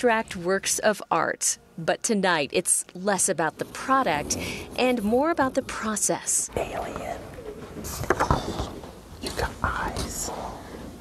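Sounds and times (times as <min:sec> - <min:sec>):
people talking and whispering: 0:03.6 - 0:11.0.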